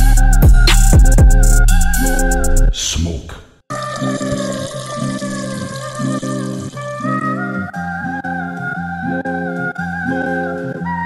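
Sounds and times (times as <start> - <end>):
hip hop beat: 0.0 - 3.1.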